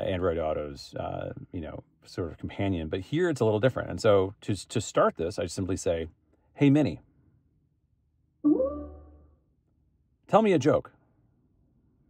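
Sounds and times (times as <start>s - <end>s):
rising electronic chime: 8.5s - 9.3s.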